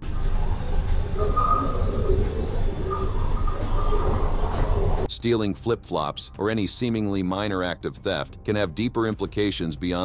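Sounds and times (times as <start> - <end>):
low rumble with hiss: 0.0 - 5.2
faint held musical tones: 0.0 - 10.0.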